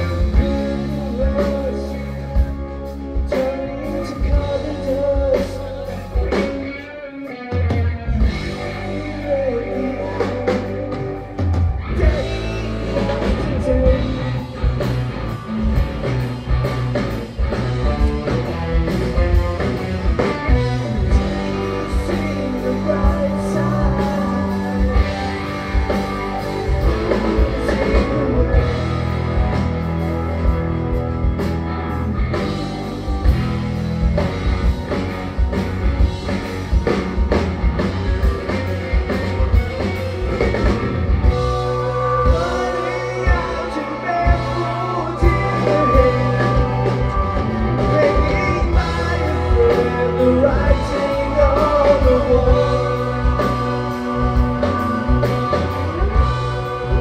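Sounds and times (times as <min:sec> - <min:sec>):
person singing: 0:00.0 - 0:14.9, 0:20.1 - 0:29.7, 0:41.2 - 0:57.0
rock band playing live: 0:00.0 - 0:57.0.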